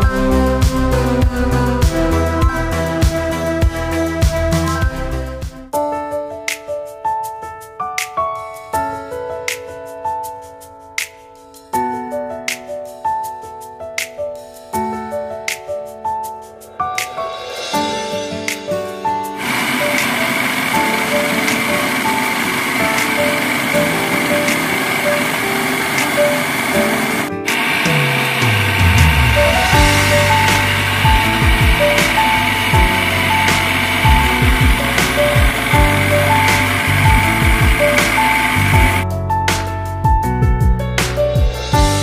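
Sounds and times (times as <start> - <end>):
background music: 0.0 - 42.0
food processor chopping onions: 19.4 - 29.4.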